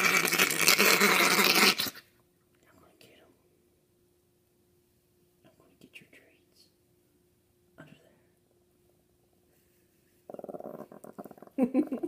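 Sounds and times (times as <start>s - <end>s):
small dog growling: 10.3s - 12.0s.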